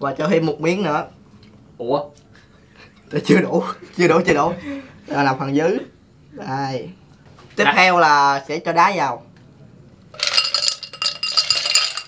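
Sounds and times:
ice cubes clattering: 10.2s - 12.0s
shaker tin ringing: 10.2s - 12.0s.

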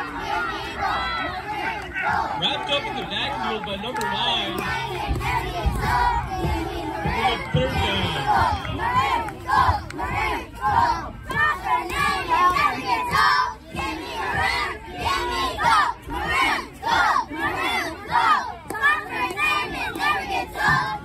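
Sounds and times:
girls chanting a cheer: 0.0s - 21.0s.

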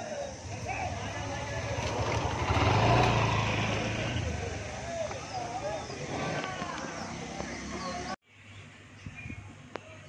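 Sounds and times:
vehicle passing by: 0.4s - 8.1s.

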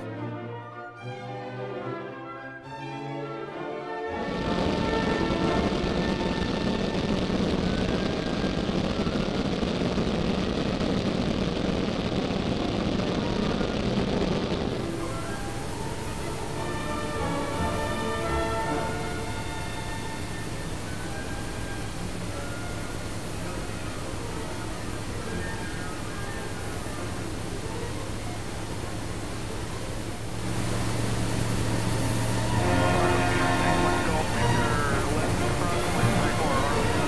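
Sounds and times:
background music: 0.0s - 7.1s, 14.7s - 37.0s
light aircraft engine drone: 4.1s - 37.0s.

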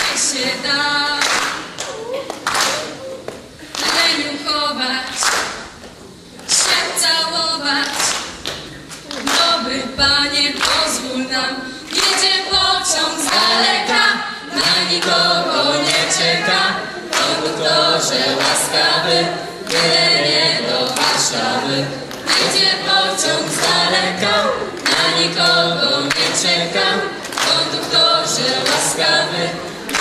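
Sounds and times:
girls singing into microphones: 0.0s - 1.9s, 3.6s - 5.6s, 6.4s - 8.5s, 9.1s - 30.0s
group singing a cappella: 0.0s - 1.9s, 3.6s - 5.7s, 6.4s - 30.0s
hand claps: 1.2s - 4.2s, 5.0s - 6.9s, 7.8s - 9.6s, 10.6s - 11.0s, 11.9s - 13.6s, 15.8s - 16.1s, 17.0s - 17.6s, 18.3s - 18.7s, 19.6s - 20.0s, 20.8s - 21.5s, 22.1s - 23.9s, 24.7s - 25.3s, 26.0s - 26.5s, 27.2s - 29.1s.

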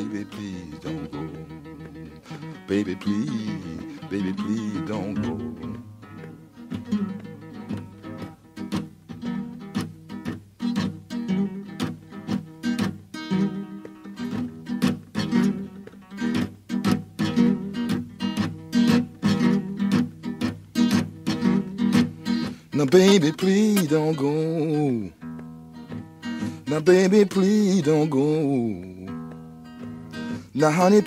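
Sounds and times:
acoustic guitar playing: 0.0s - 31.0s.

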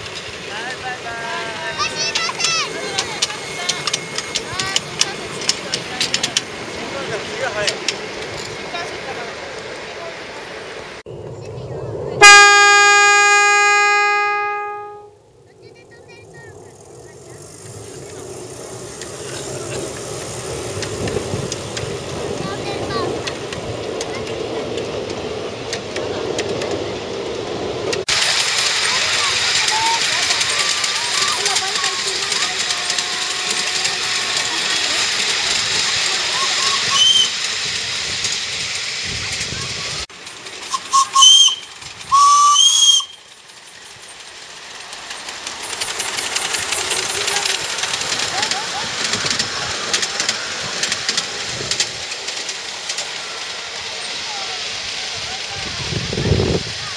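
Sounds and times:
train running on track: 0.0s - 56.9s
voices: 0.0s - 56.9s
steam locomotive whistle: 12.2s - 15.2s, 36.4s - 37.4s, 40.7s - 43.4s.

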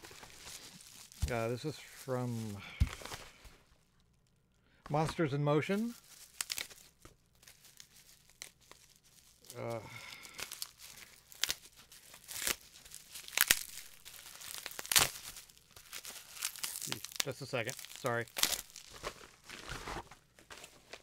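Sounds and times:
packaging torn and crinkled: 0.0s - 4.4s, 5.7s - 21.0s.

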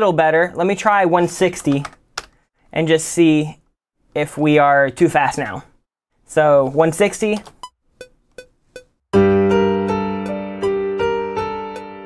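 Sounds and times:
metronome ticking: 7.6s - 8.9s
piano chord: 9.2s - 12.0s.

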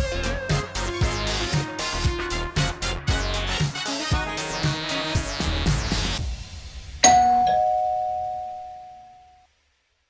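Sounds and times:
background music: 0.0s - 9.1s
two-note descending chime: 7.0s - 9.3s.

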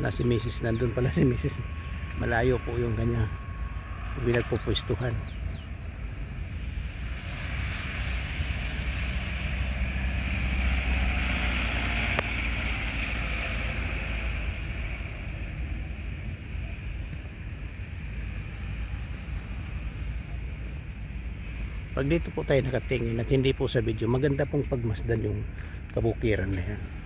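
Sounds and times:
passing engine rumble: 0.0s - 27.0s.

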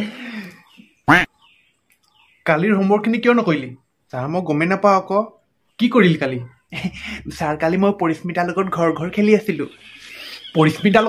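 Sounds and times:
man talking: 2.4s - 11.0s.

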